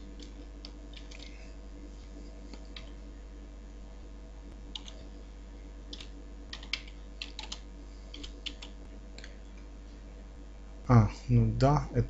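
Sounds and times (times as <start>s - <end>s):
steady low hum: 0.0s - 12.0s
computer keyboard typing: 0.1s - 1.4s, 2.6s - 3.0s, 4.7s - 5.0s, 5.9s - 9.4s.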